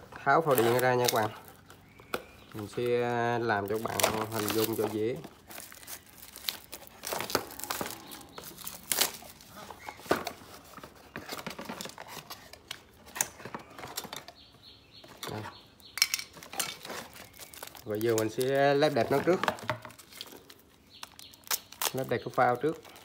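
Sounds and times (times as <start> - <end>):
plastic bag crinkling: 0.0 - 12.7, 15.2 - 23.0
cardboard box handling: 3.7 - 14.2.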